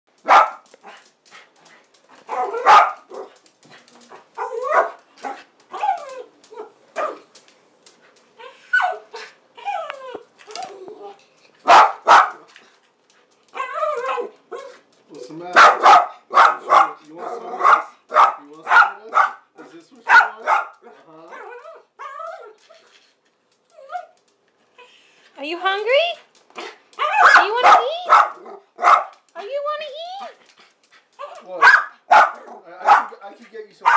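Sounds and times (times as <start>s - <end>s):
small dog barking: 0.2s - 1.0s, 2.3s - 3.4s, 4.1s - 7.3s, 8.7s - 9.2s, 11.6s - 12.5s, 13.6s - 14.8s, 15.6s - 22.5s, 27.0s - 29.3s, 31.2s - 33.2s.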